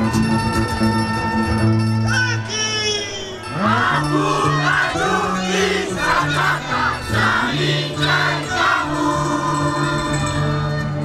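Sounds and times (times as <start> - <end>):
crowd noise: 0.0 - 11.0
folk dance music: 0.0 - 11.0
group of voices shouting and singing: 2.1 - 11.0.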